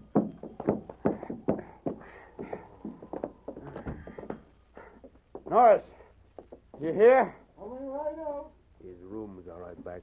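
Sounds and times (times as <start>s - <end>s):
footsteps in a small room: 0.0s - 5.6s
knocks: 0.0s - 5.6s.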